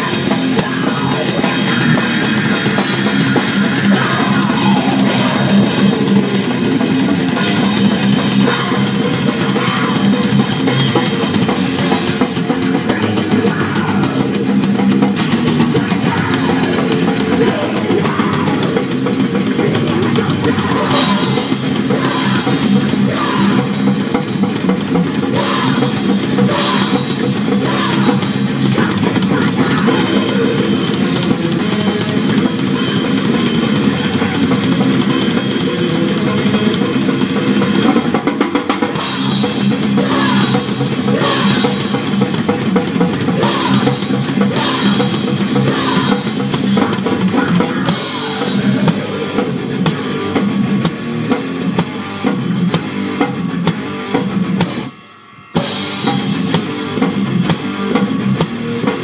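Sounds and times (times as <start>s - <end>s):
distorted electric guitar: 0.0s - 59.0s
fast drum kit: 0.0s - 59.0s
thrash metal music: 0.0s - 59.0s.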